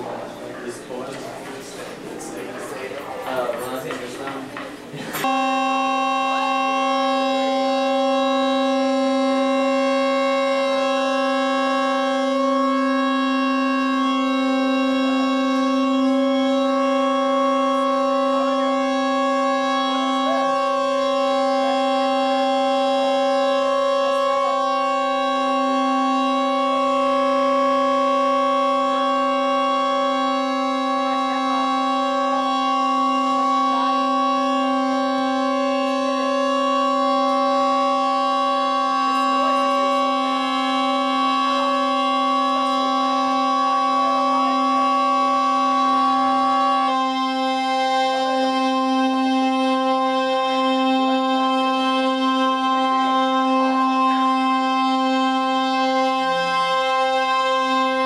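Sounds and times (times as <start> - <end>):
synthesizer drone: 0.0 - 58.0.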